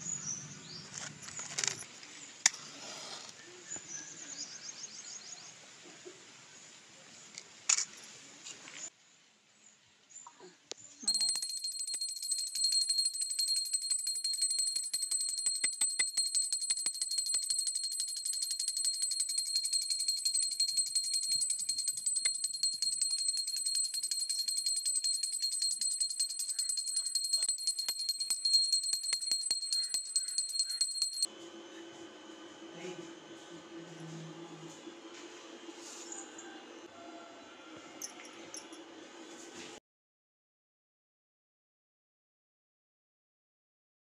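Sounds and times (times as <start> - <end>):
small hand bell ringing: 11.0 - 31.3.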